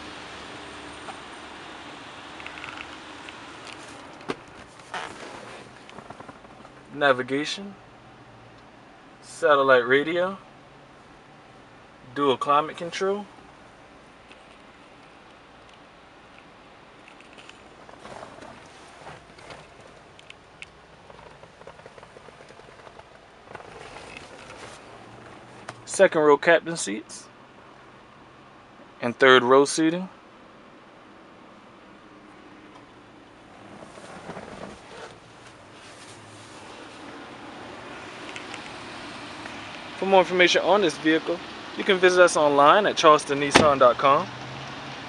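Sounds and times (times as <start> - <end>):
small clicks and crackles: 2.4 - 6.8, 14.2 - 24.8
faint rustling: 3.6 - 7.0, 17.0 - 25.9, 33.3 - 37.3.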